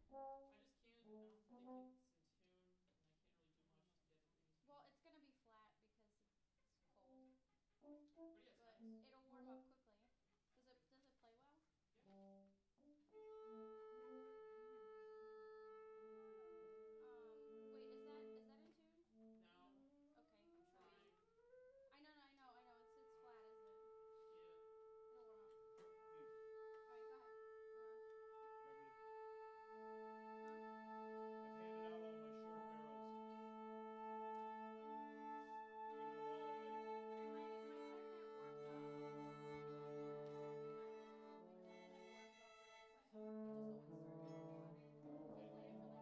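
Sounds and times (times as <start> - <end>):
lower held note: 13.2 - 18.7, 22.6 - 46.0
held tuning notes: 23.6 - 42.6.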